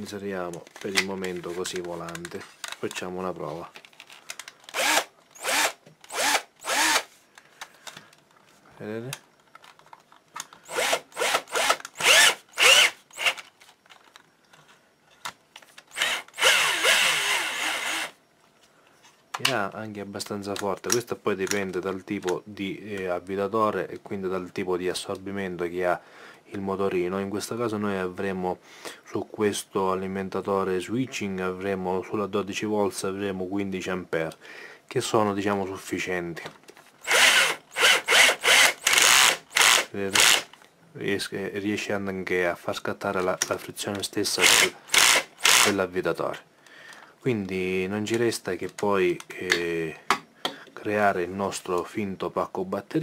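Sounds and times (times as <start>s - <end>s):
cordless drill motor spinning: 4.0s - 7.1s, 10.6s - 13.5s, 15.9s - 18.2s, 37.0s - 40.5s, 44.4s - 45.8s.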